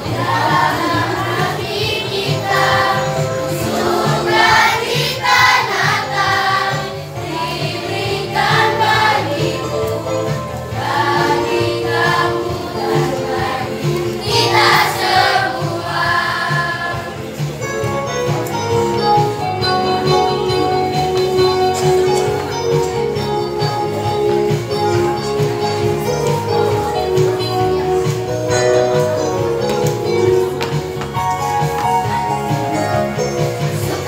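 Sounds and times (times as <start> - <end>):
children's choir singing: 0.0 - 17.6
instrumental accompaniment with beat: 0.0 - 34.0.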